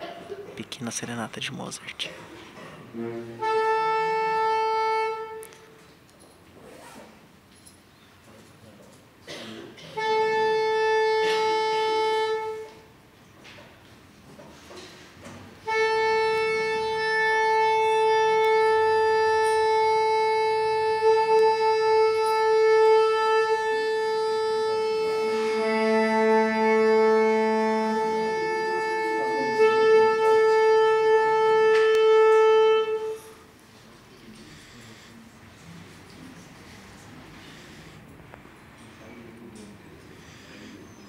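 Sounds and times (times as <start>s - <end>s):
saxophone long steady note: 2.9s - 5.9s, 9.8s - 13.1s, 15.5s - 41.0s
lower second note: 15.7s - 33.4s.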